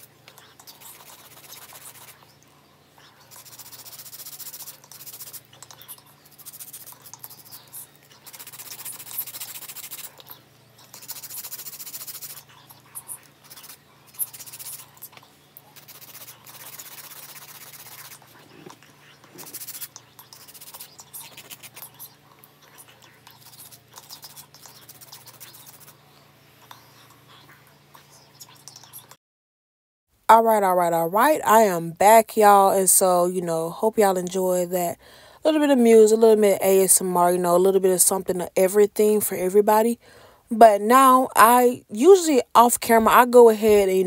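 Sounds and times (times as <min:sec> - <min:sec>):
nail file rasping on nails: 0:00.0 - 0:02.2, 0:03.2 - 0:26.0.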